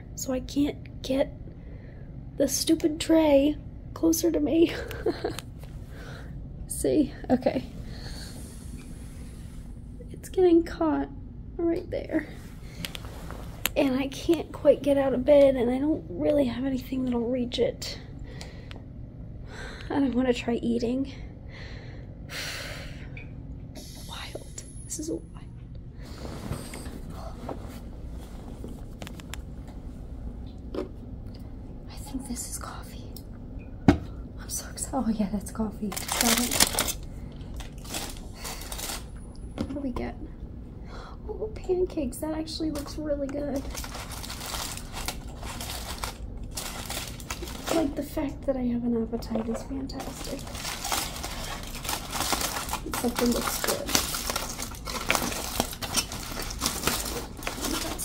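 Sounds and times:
low room hum: 0:00.0 - 0:58.0
aluminium foil crinkling: 0:35.8 - 0:39.2, 0:42.5 - 0:48.4, 0:49.4 - 0:58.0.

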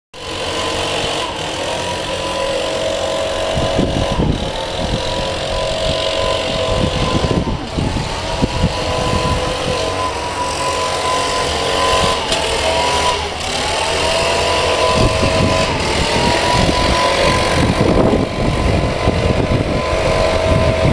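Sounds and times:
low rumbling: 0:00.2 - 0:20.9
mechanical hum with tones: 0:00.2 - 0:20.9.

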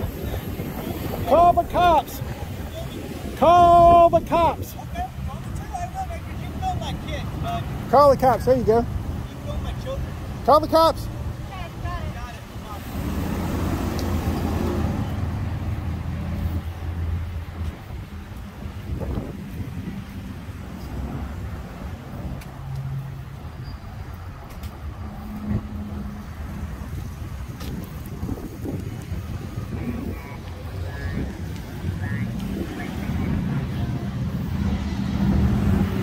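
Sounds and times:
road traffic noise: 0:00.0 - 0:36.0.

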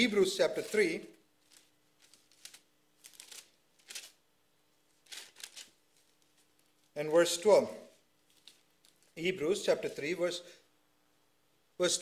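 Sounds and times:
paper pages rustling: 0:00.5 - 0:04.2, 0:04.9 - 0:07.0, 0:08.2 - 0:09.2.

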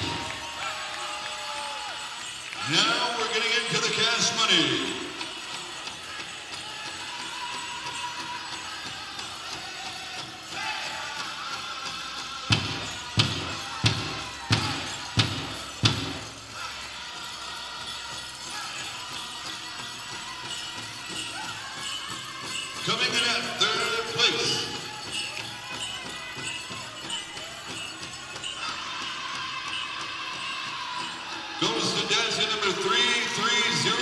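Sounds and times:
background hubbub: 0:00.0 - 0:34.0
large drum beats: 0:12.5 - 0:16.6.

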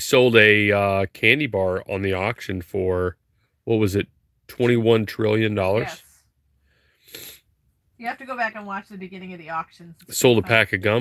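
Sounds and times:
breathy puff of air: 0:06.6 - 0:07.5.

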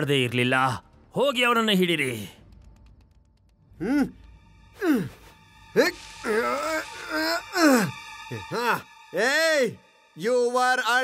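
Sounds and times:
wavering moan: 0:04.8 - 0:08.8
cartoon groans and cries of pain: 0:05.8 - 0:08.8.

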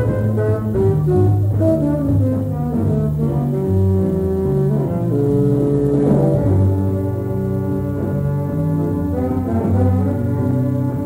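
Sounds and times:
jazz big band chords: 0:00.0 - 0:11.0.

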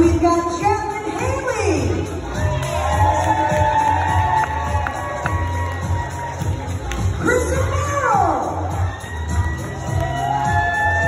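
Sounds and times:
upbeat music with thudding bass: 0:00.0 - 0:11.0
guests cheering and clapping: 0:02.1 - 0:11.0.

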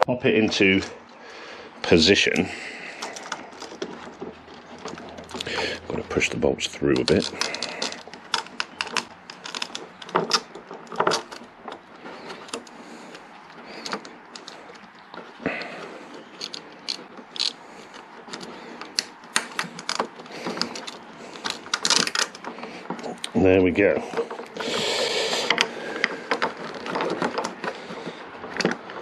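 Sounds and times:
bolts clicking and rattling: 0:00.0 - 0:29.0.

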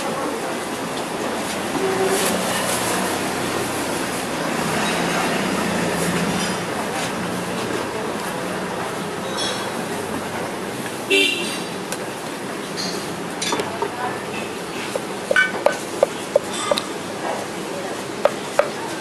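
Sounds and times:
street background noise: 0:00.0 - 0:19.0
cleaver chopping on metal pan: 0:18.2 - 0:18.8.

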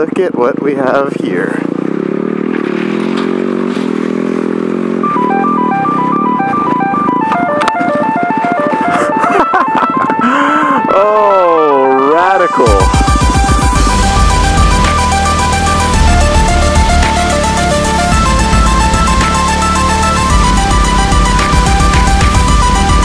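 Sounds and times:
dirt bike engine running: 0:00.0 - 0:23.0
wobbling pitch sweep: 0:04.8 - 0:23.0
plinking electronic melody: 0:04.9 - 0:23.0
electronic music with heavy bass: 0:10.8 - 0:23.0.

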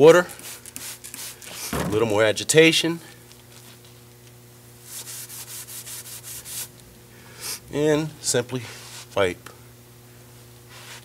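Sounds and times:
faint steady hum: 0:00.0 - 0:11.0
hand scrubbing wet concrete: 0:04.9 - 0:06.7.

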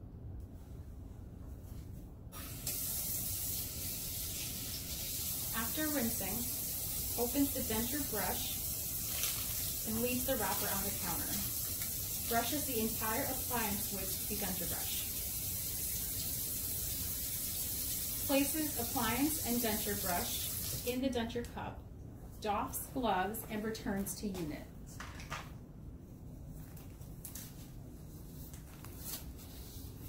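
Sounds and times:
faucet water running into sink: 0:02.4 - 0:20.9.

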